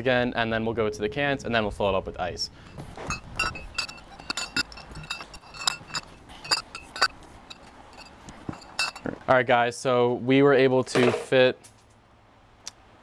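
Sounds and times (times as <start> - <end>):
glass bottles clinking: 2.6 - 9.2.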